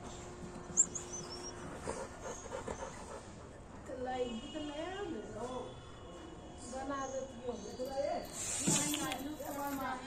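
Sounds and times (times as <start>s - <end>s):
dog panting: 0.7s - 3.9s.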